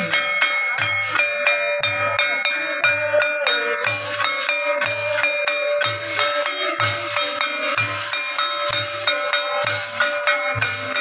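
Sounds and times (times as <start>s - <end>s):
brass hand cymbals clashing: 0.0s - 11.0s.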